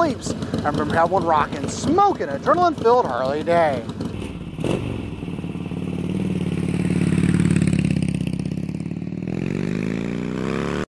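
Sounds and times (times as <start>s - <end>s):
motorcycle engine running: 0.0s - 10.8s.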